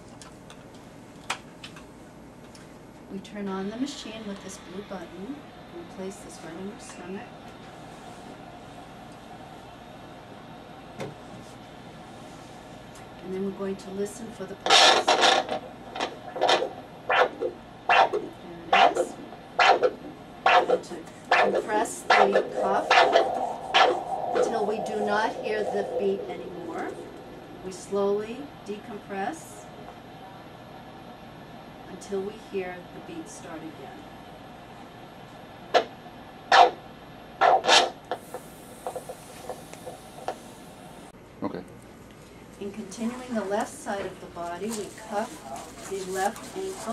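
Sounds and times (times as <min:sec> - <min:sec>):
doppler pulse whooshing beats: 0:20.6 - 0:29.8.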